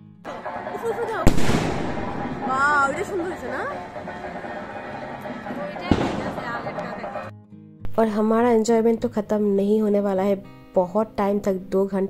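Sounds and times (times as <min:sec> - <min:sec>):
firework bangs: 0:00.3 - 0:07.3.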